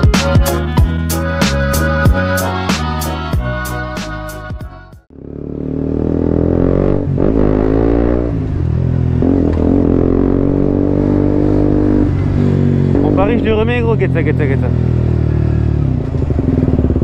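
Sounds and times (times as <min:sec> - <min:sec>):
motorcycle engine running: 0:05.1 - 0:17.0.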